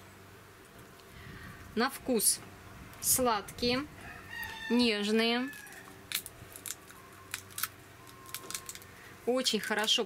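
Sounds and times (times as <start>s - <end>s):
pea pod cracking: 5.5s - 8.9s.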